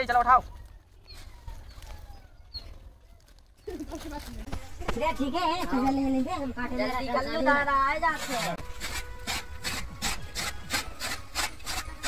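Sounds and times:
chaff cutter chopping stalks: 8.1 - 12.0.

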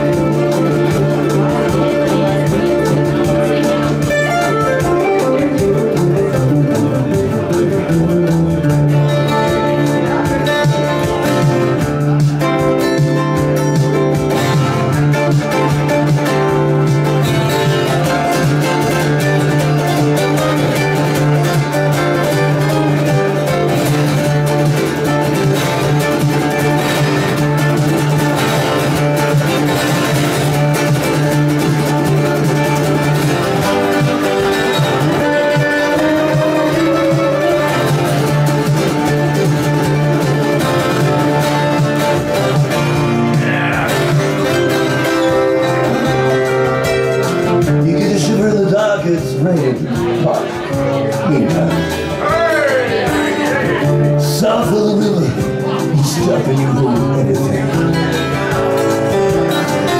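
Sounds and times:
twelve-string acoustic guitar: 0.0 - 59.9.

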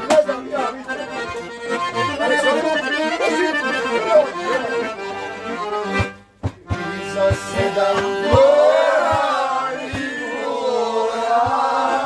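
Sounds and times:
accordion: 0.0 - 12.0
group singing together: 6.8 - 12.0.

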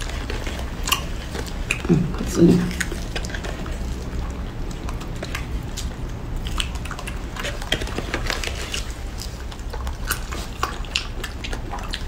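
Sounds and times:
low steady hum: 0.0 - 12.0
strawberries being chewed: 0.0 - 12.0.

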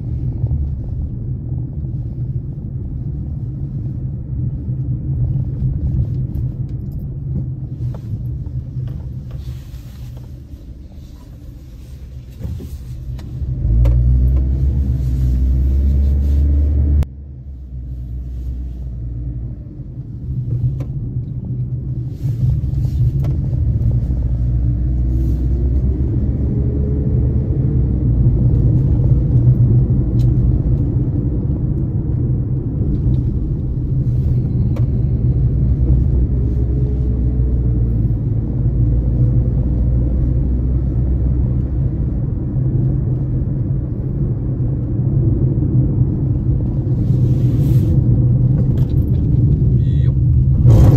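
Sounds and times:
road noise: 0.0 - 50.9
vehicle engine rumble: 0.0 - 50.9.

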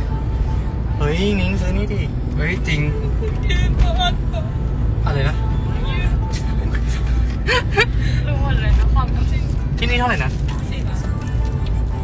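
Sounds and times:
car rumble from inside cabin: 0.0 - 12.0.

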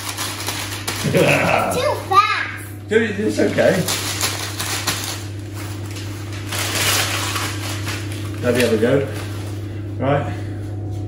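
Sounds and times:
newspaper being crumpled: 0.0 - 1.7, 3.4 - 9.7.

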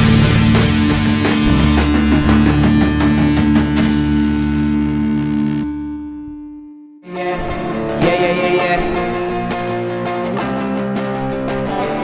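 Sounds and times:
cymbal crash: 0.0 - 4.8
drum hits: 0.0 - 4.8
distorted guitar chord ringing: 0.0 - 12.0.

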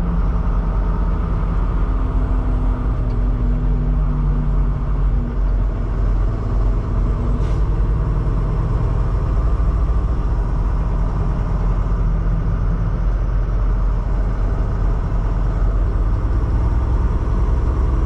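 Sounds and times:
road noise: 0.0 - 18.0
truck diesel engine rumble: 0.0 - 18.0.

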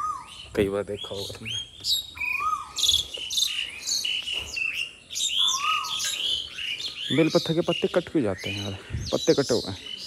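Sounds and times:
birds chirping and trilling: 0.0 - 10.0
whistled bird note rising and falling: 1.4 - 7.5.

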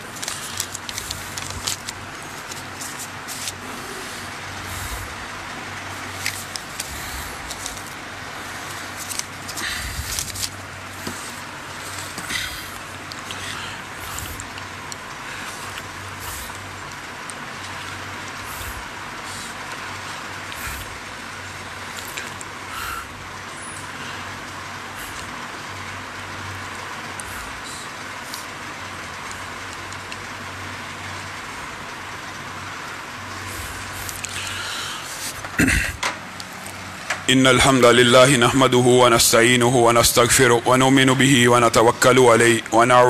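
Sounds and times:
faint clicks and rustles: 0.0 - 5.1, 5.7 - 21.2
low room hum: 0.0 - 43.0
steady background hiss: 0.0 - 43.0.

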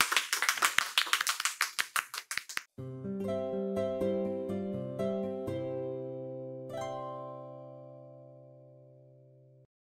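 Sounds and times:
people clapping: 0.0 - 2.7.

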